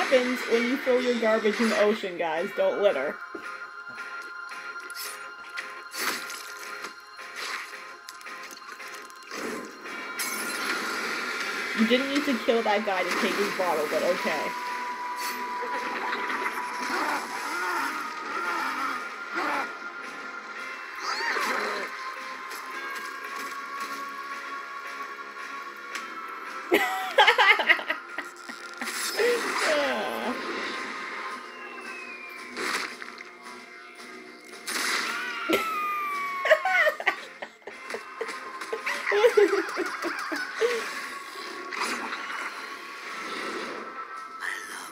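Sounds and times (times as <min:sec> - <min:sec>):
dramatic soundtrack music: 0:00.0 - 0:44.9.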